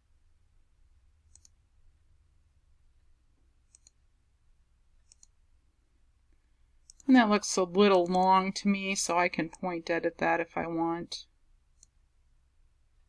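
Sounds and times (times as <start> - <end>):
computer mouse clicks: 1.3 - 1.6, 3.7 - 4.0, 5.0 - 5.4, 6.8 - 7.1, 7.9 - 8.3, 11.8 - 12.0.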